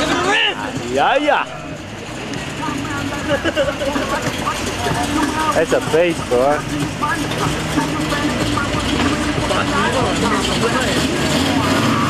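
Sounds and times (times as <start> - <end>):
car engine rumbling: 0.0 - 12.0.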